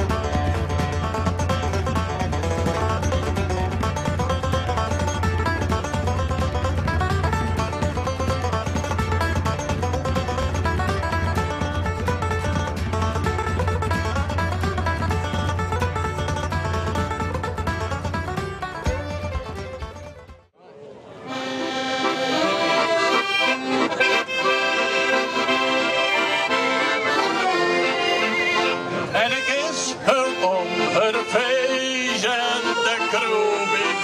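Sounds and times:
music with low beat: 0.0s - 20.5s
accordions playing traditional tune: 0.0s - 34.0s.

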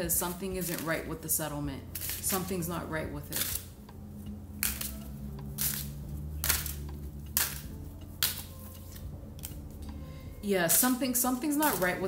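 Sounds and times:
cards being shuffled: 1.9s - 2.4s, 4.6s - 5.0s, 5.6s - 9.6s.

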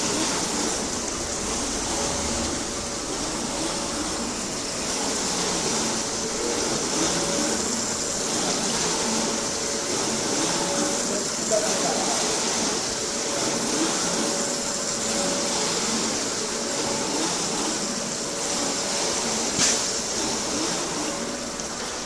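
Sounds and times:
polishing machine rushing noise: 0.0s - 21.6s.

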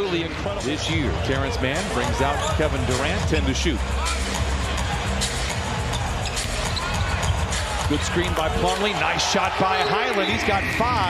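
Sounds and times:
crowd noise hum: 0.0s - 11.0s.

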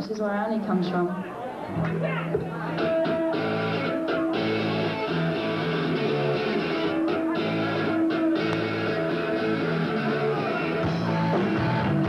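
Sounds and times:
electric guitar chord riff: 2.8s - 12.0s.

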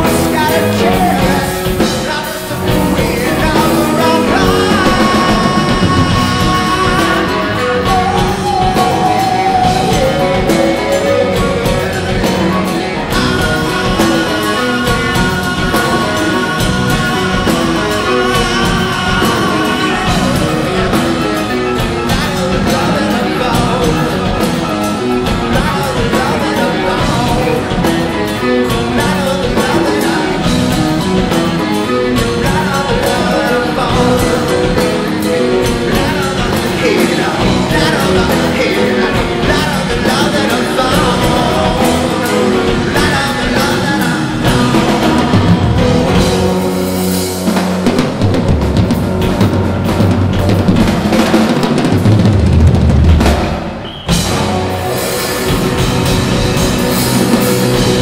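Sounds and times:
bass guitar: 0.0s - 58.0s
drum kit with cymbals: 0.0s - 58.0s
electric guitar: 0.0s - 58.0s
live rock band playing: 0.0s - 58.0s.

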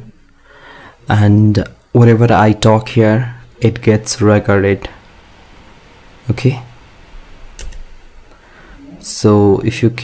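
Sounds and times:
light computer clicks: 7.6s - 7.9s.

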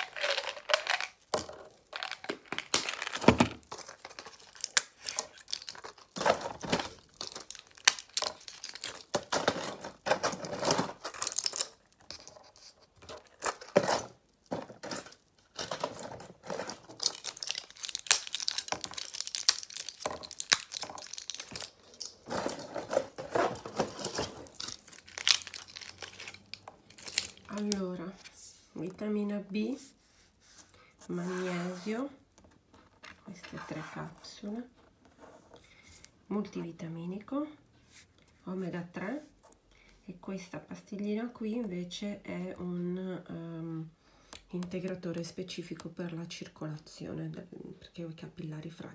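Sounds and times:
rustling and crinkling: 0.0s - 36.9s.

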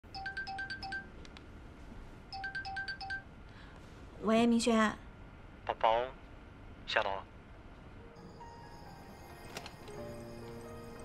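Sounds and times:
phone ringtone: 0.1s - 1.2s, 2.3s - 3.3s, 8.2s - 11.0s.

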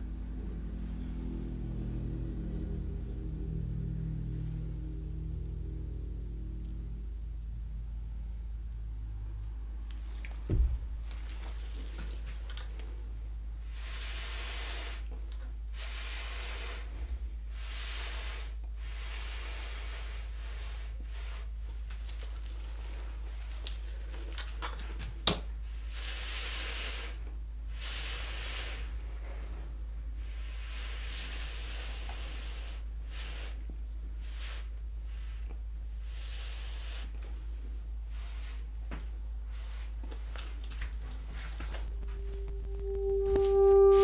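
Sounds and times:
steady low hum: 0.0s - 21.9s, 27.1s - 44.0s
breath blown through a straw: 13.6s - 15.1s, 15.8s - 21.5s, 25.8s - 29.6s, 30.2s - 33.6s, 34.2s - 37.2s, 41.8s - 44.0s.

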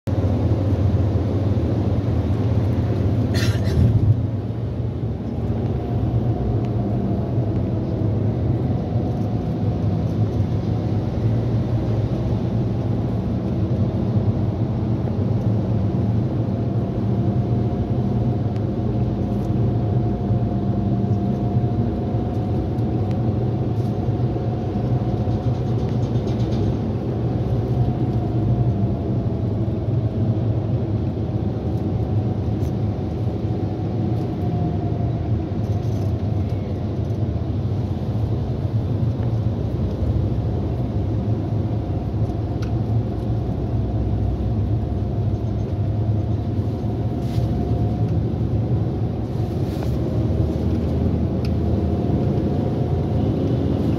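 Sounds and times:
car engine and road noise: 0.0s - 53.9s.

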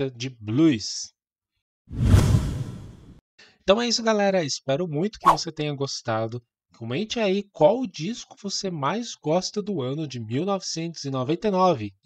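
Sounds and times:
whoosh: 1.9s - 3.2s.

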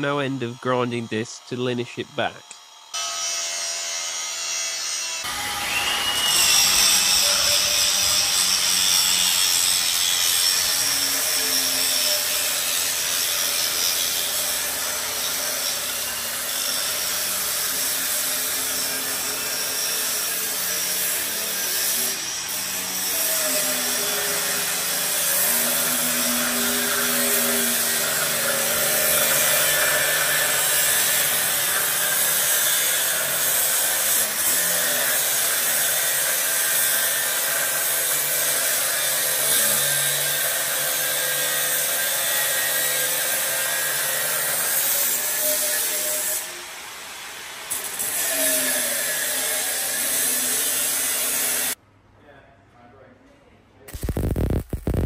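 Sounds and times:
angle grinder grinding steel: 0.0s - 51.8s.

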